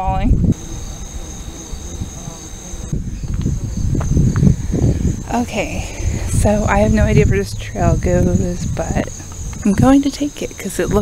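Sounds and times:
insects trilling: 0.0s - 11.0s
low rumble: 2.9s - 11.0s.

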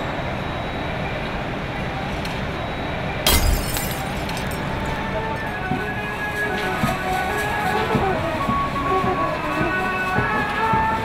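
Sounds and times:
glass shards tinkling: 3.3s - 4.9s
glass shattering: 3.3s - 4.9s.

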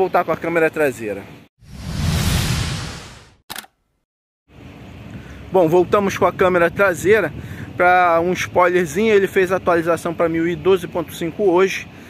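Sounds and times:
transition whoosh with deep rumble: 1.6s - 3.4s
sharp click: 3.5s - 3.8s.

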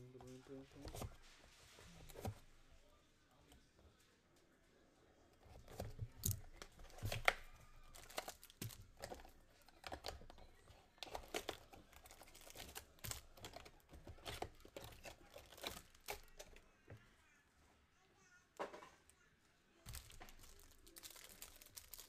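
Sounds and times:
plastic wrap crinkling and tearing: 6.2s - 10.4s, 11.0s - 16.5s, 19.9s - 22.0s.

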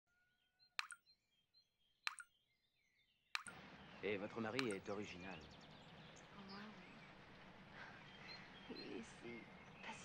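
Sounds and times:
water drops plopping into basin: 3.4s - 3.6s, 4.6s - 4.9s.

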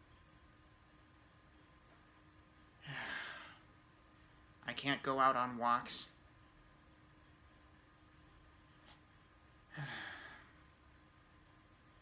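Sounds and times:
man sighing: 2.8s - 3.6s, 9.7s - 10.6s.

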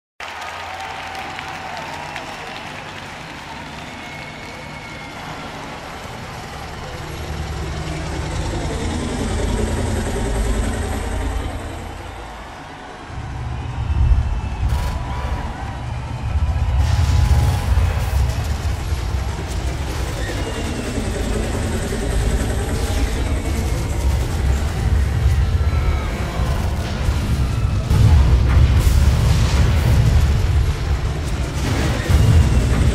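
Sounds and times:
audience applauding: 0.2s - 9.8s, 10.7s - 27.9s
deep low rumble: 13.1s - 32.9s.

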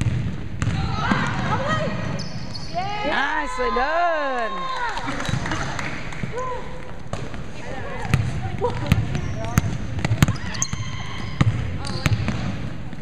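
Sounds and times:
players' voices: 0.7s - 13.0s
basketball bouncing on wood floor: 8.0s - 12.6s.

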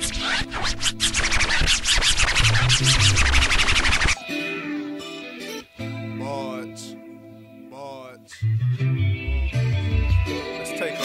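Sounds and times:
clicking scratch-like percussion: 0.0s - 4.2s.

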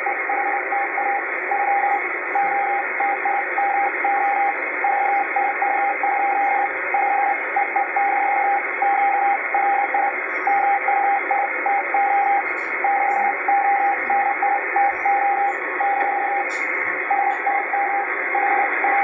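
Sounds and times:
morse code beeps: 0.0s - 19.0s.

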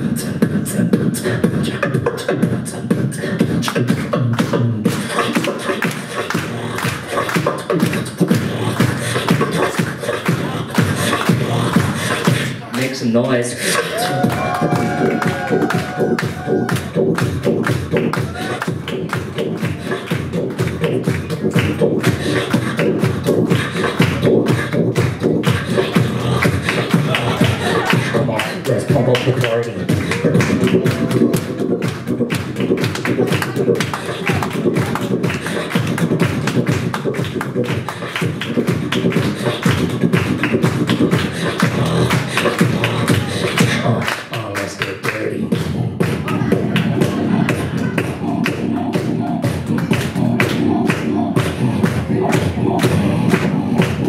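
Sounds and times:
beatboxing through microphone: 0.0s - 54.0s.

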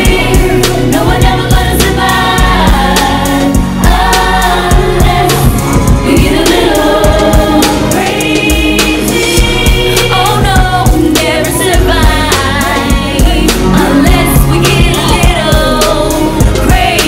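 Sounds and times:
drum beat: 0.0s - 17.0s
heavy bass: 0.0s - 17.0s
women singing in harmony: 0.0s - 17.0s.

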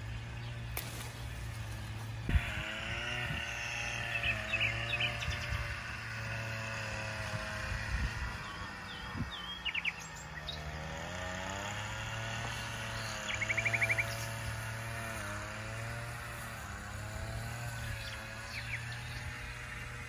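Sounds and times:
low drifting drone: 0.0s - 20.0s
small birds chirping: 0.0s - 20.0s.

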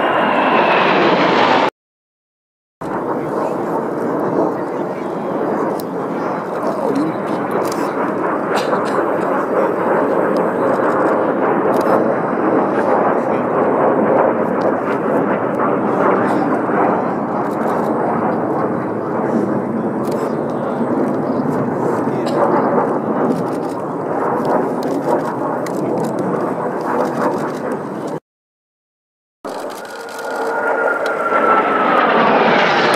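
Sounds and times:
jets flying overhead: 0.0s - 1.7s, 2.8s - 28.2s, 29.5s - 32.9s.

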